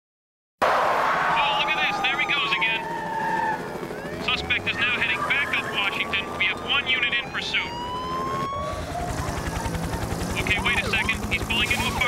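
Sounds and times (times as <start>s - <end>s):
tinny radio voice chatter: 4.2s - 7.7s, 10.3s - 12.0s.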